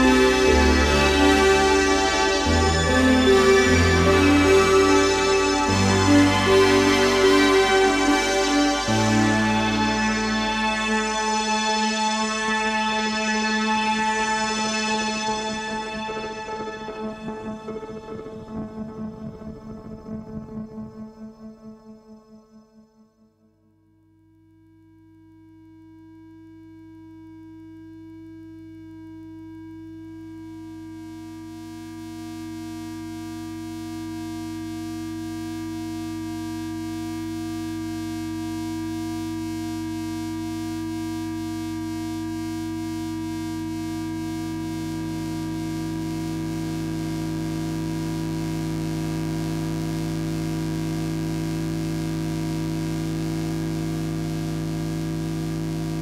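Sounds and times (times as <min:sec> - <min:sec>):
analogue synthesizer drone: 0:00.0 - 0:23.6, 0:30.2 - 0:56.0.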